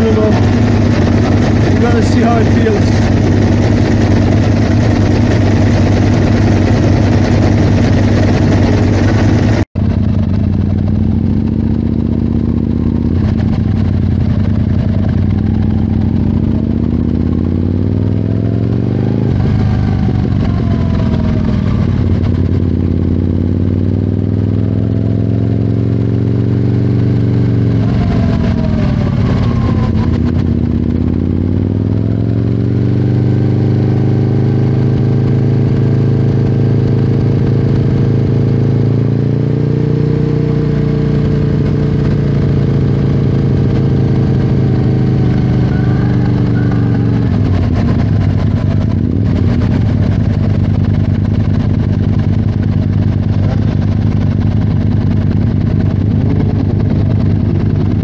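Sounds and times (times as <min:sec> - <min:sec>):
motorcycle engine: 0:00.0 - 0:58.0.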